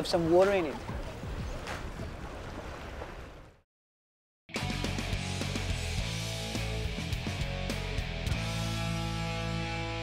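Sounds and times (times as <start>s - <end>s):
water moving: 0.0s - 3.6s
water splash: 0.4s - 3.6s
wind on microphone: 0.6s - 3.4s.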